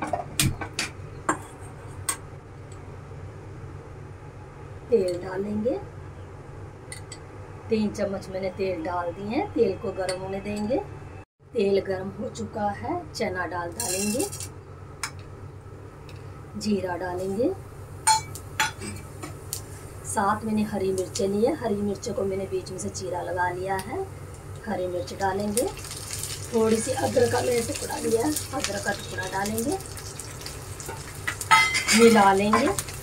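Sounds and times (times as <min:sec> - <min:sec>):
gas stove burner humming: 0:13.2 - 0:33.0
steel utensils clinking: 0:13.8 - 0:14.5, 0:30.8 - 0:33.0.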